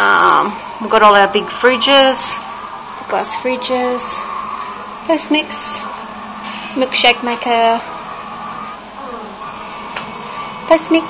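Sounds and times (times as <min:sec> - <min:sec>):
kitchen machinery whirring hum: 0:00.0 - 0:11.0.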